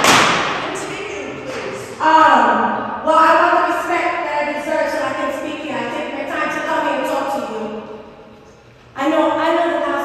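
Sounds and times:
loud thump: 0.0 - 0.8.

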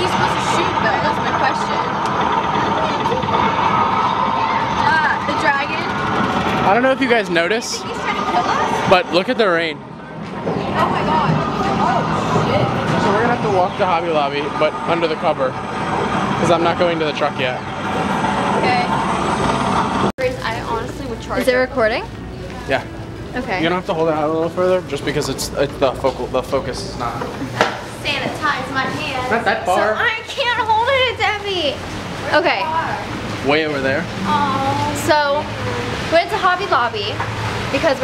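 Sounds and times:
crowd voices: 0.0 - 38.0
woman speaking close: 20.2 - 22.1, 23.4 - 23.7, 28.0 - 33.1.

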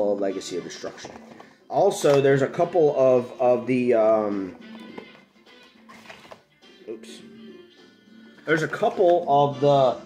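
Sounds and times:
quiet background music: 0.0 - 10.0
cardboard and foil packs rustling: 5.8 - 6.5, 8.4 - 9.6.

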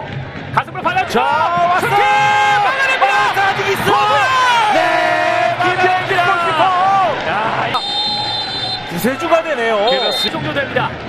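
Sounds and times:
commentators talking excitedly: 0.6 - 7.8
referee whistle blast: 7.8 - 9.0, 9.8 - 10.4.

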